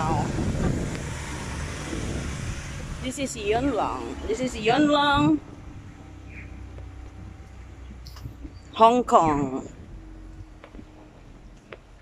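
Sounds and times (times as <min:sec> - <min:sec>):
low hum of car traffic: 0:00.0 - 0:12.0.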